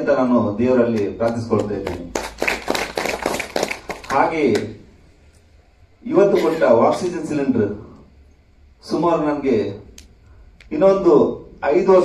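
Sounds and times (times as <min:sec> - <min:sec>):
hands clapping: 0:00.9 - 0:04.8.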